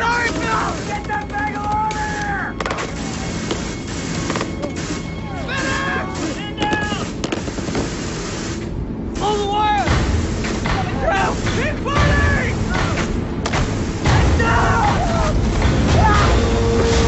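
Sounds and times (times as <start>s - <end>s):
men shouting indistinctly: 0.0s - 2.6s, 5.3s - 7.1s, 10.8s - 13.2s, 14.1s - 16.6s
dramatic music score: 0.0s - 17.0s
heavy low rumble: 1.9s - 17.0s.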